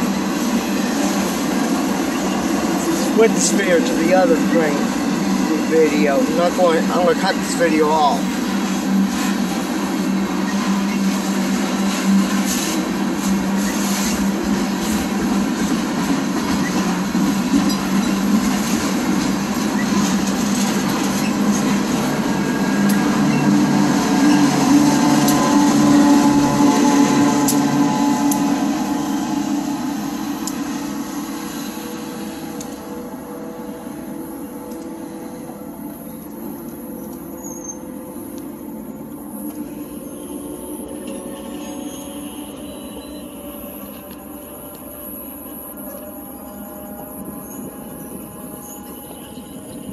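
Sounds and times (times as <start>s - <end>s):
freight train rumbling and clattering: 0.0s - 49.9s
locomotive passing: 0.0s - 49.9s.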